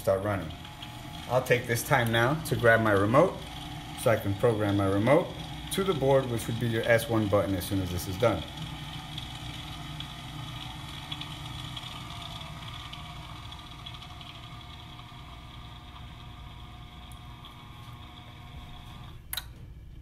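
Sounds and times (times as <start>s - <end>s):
gate motor whirring: 0.0s - 19.6s.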